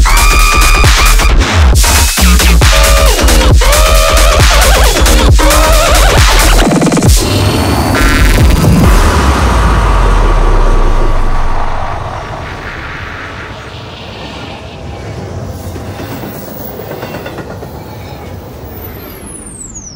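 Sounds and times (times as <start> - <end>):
noisy rattling rumble: 1.4 - 14.6.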